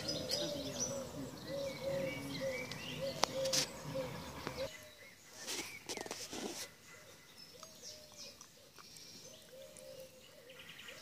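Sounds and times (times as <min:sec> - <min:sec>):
low bird call: 0:00.0 - 0:11.0.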